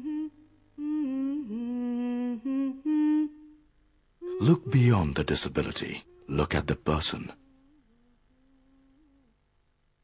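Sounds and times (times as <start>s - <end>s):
person humming a slow melody: 0.0s - 5.4s, 6.0s - 6.4s, 7.3s - 9.7s.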